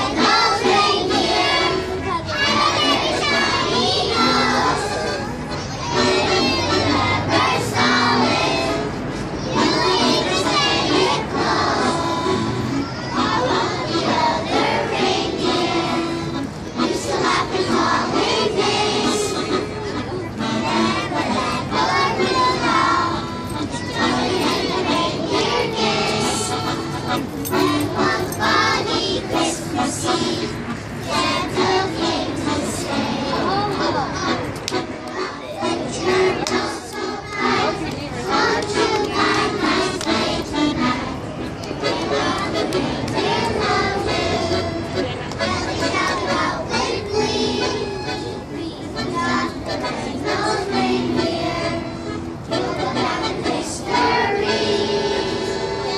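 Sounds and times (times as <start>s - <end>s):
young children's voices: 0.0s - 15.4s, 33.2s - 40.0s
children singing a carol: 0.0s - 55.9s
crowd chatter: 0.0s - 55.9s.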